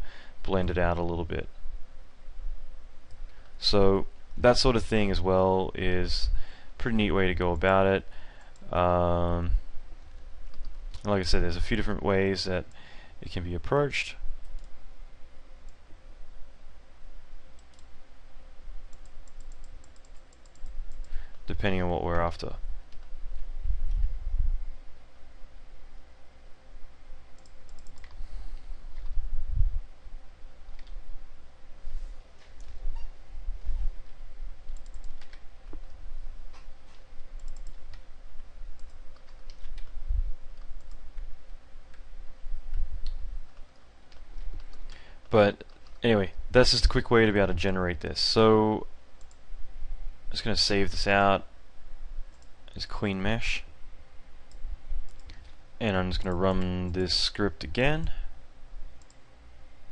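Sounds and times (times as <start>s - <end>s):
computer mouse clicks: 17.6s - 17.9s, 18.9s - 21.2s, 27.4s - 28.2s, 34.7s - 36.7s, 37.4s - 38.0s, 38.8s - 40.0s, 54.5s - 55.6s, 59.0s - 59.2s.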